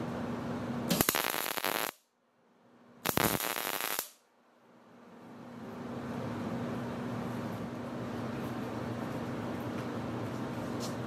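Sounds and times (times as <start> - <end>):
mig welder crackling sizzle: 0.9 - 2.1, 3.0 - 4.2.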